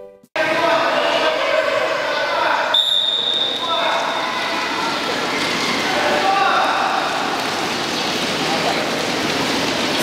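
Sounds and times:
children talking: 0.5 - 2.8, 3.5 - 8.9.

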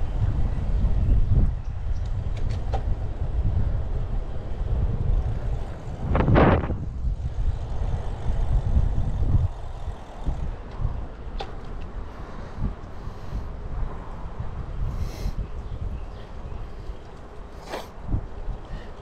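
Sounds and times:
bike tyre road noise: 0.0 - 19.0
wind rumbling on microphone: 0.0 - 19.0.

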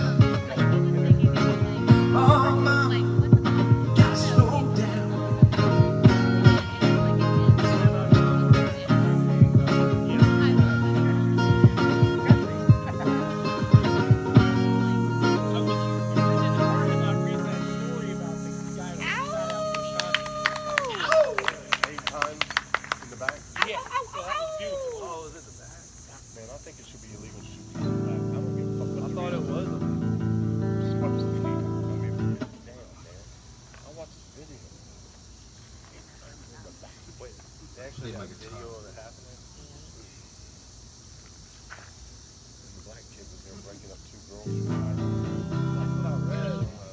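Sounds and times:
guitar strumming chords: 0.0 - 20.0, 27.3 - 32.6, 44.4 - 46.9.

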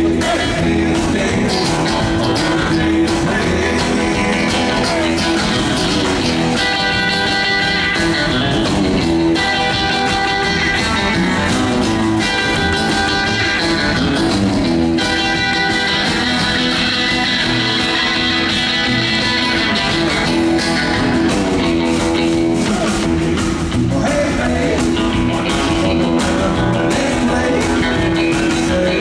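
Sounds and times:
drums: 0.0 - 29.0
electric guitar: 0.0 - 29.0
strummed acoustic guitar: 0.0 - 29.0.

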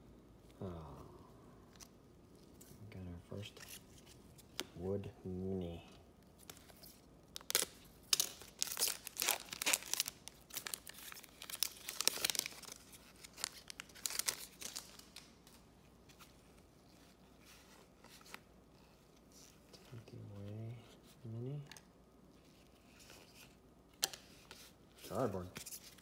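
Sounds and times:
wrapper tearing and crinkling: 6.4 - 15.4.

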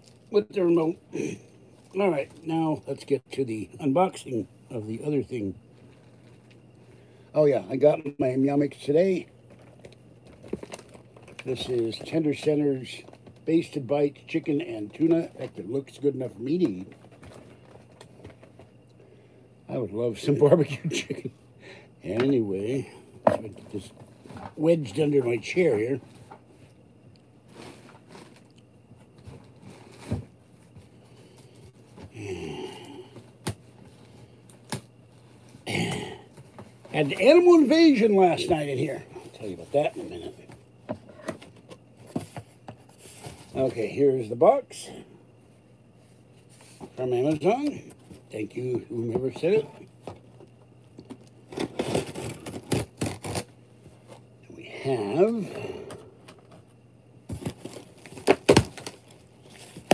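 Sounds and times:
package handling sounds: 9.4 - 13.5, 55.9 - 59.9
man grunting: 35.7 - 36.2
cardboard box being torn open: 51.6 - 53.5.

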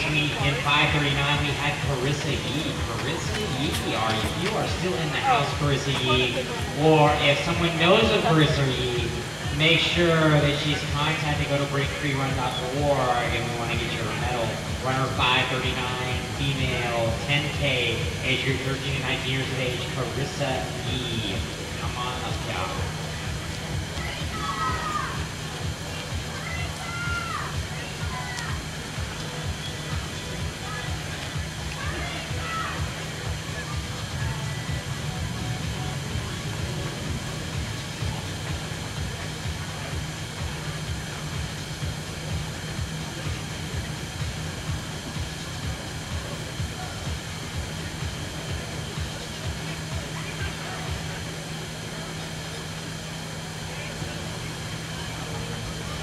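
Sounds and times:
distant chatter: 0.0 - 56.0
faint music: 0.0 - 56.0.

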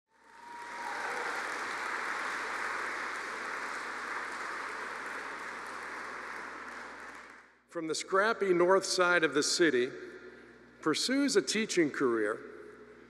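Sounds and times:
audience applause: 0.1 - 7.5.

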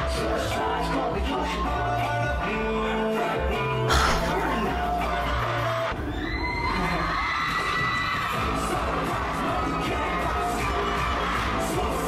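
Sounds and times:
pop song with steady beat: 0.0 - 12.0
concert audience screaming: 6.0 - 11.8.

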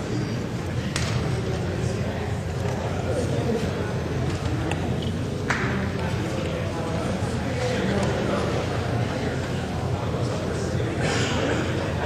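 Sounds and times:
murmur of many people talking: 0.0 - 12.0.

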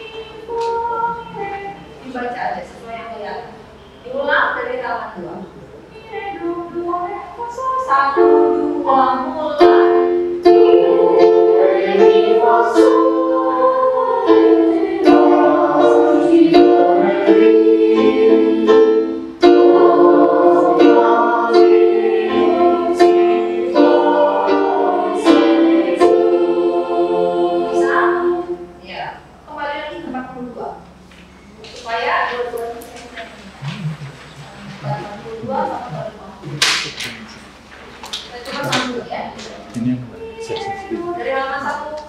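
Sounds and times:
choir of young voices singing: 0.0 - 2.0, 5.9 - 28.8.

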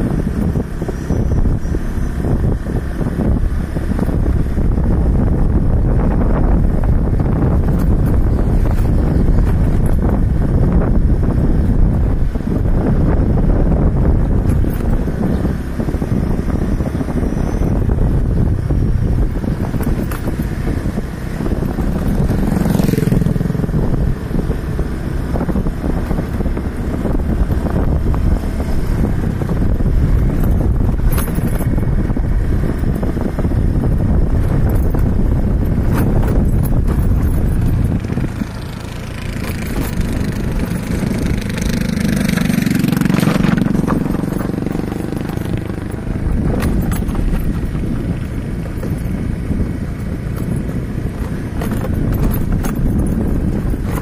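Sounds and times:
motorcycle engine running: 0.0 - 54.0
wind rumbling on microphone: 0.0 - 54.0.

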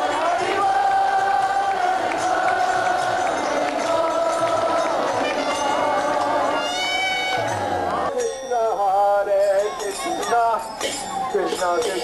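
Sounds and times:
music: 0.0 - 8.4
voices singing: 0.0 - 12.0.

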